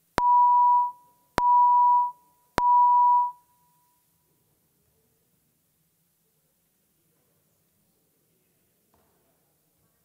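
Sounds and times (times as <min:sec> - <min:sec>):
electronic beeps: 0:00.2 - 0:03.8.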